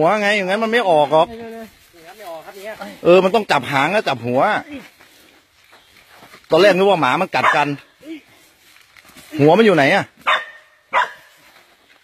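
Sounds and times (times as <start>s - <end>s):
dog barking: 7.4s - 7.7s, 10.2s - 11.4s.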